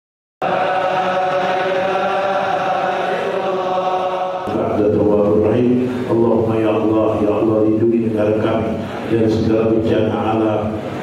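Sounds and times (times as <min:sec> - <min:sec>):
men chanting in unison: 0:00.4 - 0:05.1.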